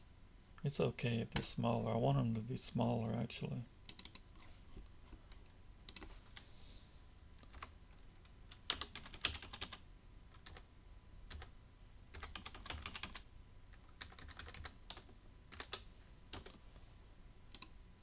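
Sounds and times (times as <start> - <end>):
computer keyboard typing: 3.9 - 4.2, 5.9 - 6.1, 7.4 - 7.7, 8.5 - 10.6, 11.3 - 11.5, 12.1 - 16.6.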